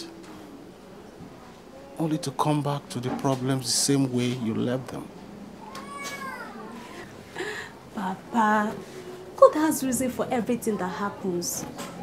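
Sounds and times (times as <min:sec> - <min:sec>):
cat meowing: 0:05.6 - 0:06.8.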